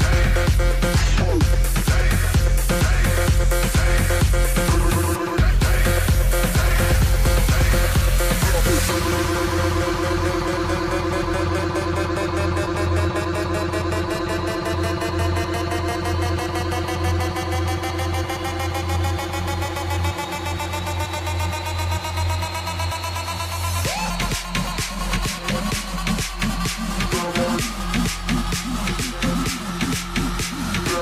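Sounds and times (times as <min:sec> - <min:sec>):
pulsing synth: 0:00.0 - 0:31.0
rising synth lines: 0:00.0 - 0:31.0
steady bass: 0:00.0 - 0:31.0.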